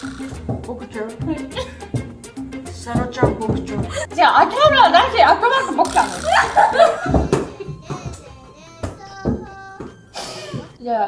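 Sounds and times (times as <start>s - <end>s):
women talking: 0.6s - 1.7s, 2.7s - 7.2s, 10.6s - 11.0s
women laughing: 1.5s - 1.9s, 3.9s - 7.9s.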